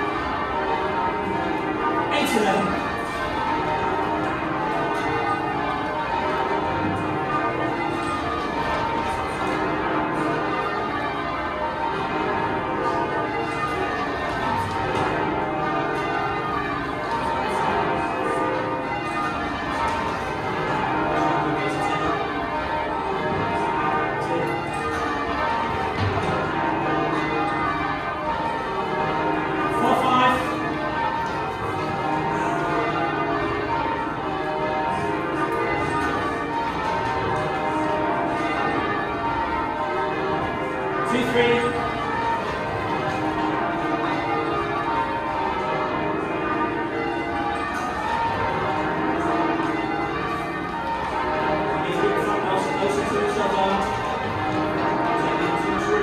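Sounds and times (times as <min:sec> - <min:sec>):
church bells ringing in changes: 0:00.0 - 0:56.0.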